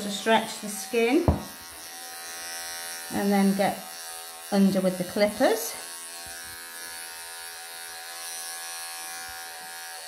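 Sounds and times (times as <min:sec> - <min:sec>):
electric pet clippers buzzing: 0:00.0 - 0:10.0.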